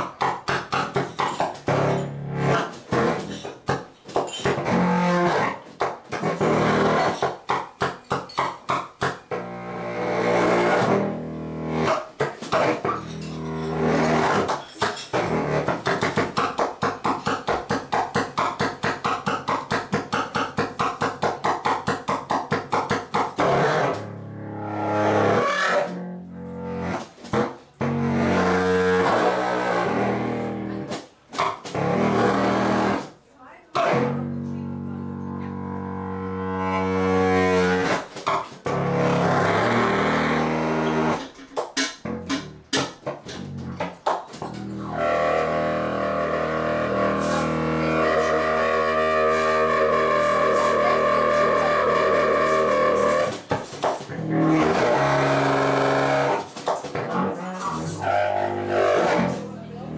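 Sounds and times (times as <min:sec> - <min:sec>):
contrabass saxophone honking notes: 0:33.9 - 0:38.0, 0:44.6 - 0:53.4, 0:57.2 - 0:59.9.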